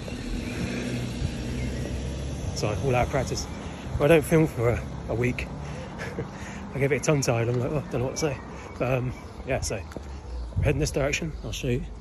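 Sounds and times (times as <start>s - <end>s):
vehicle engine running: 0.0s - 7.0s.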